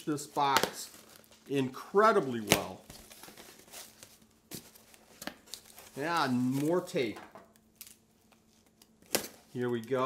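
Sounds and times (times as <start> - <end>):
tape and cardboard crinkling: 0.0 - 10.0.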